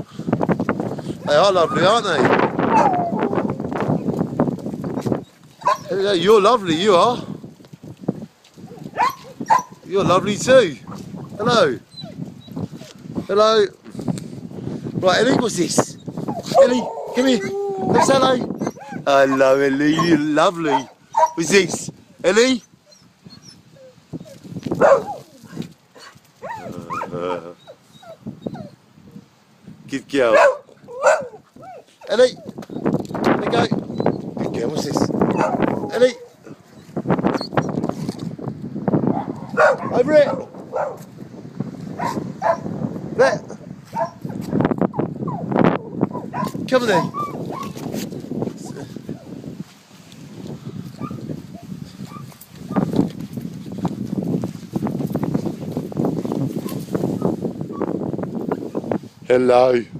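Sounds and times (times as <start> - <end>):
dog whining: 2.6 - 3.7, 5.2 - 6.0, 8.7 - 9.8, 11.9 - 12.9, 16.2 - 19.4, 22.6 - 28.8, 30.9 - 32.8, 33.9 - 34.2, 35.3 - 37.8, 47.1 - 47.8
footsteps on gravel: 49.6 - 56.8.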